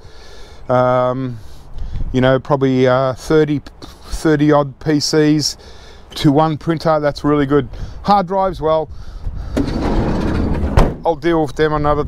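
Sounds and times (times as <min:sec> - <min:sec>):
van door slamming shut: 0:09.5 - 0:11.1
sliding door rolling along track: 0:09.6 - 0:11.0.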